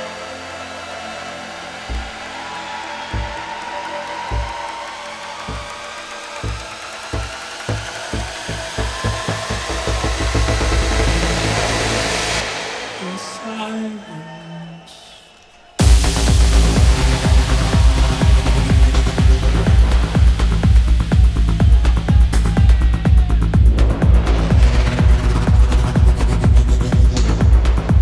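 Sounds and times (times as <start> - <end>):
electronic music: 0.0 - 28.0
kick drum roll: 1.8 - 4.8, 5.4 - 5.8, 6.4 - 9.4
rising noise sweep: 1.8 - 13.6.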